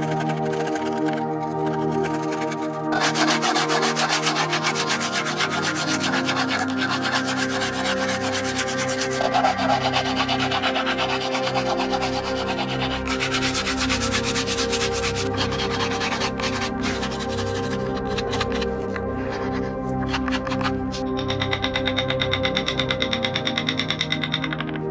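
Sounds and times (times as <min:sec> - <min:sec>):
sandpaper rubbing on wood: 0:00.0 - 0:21.4.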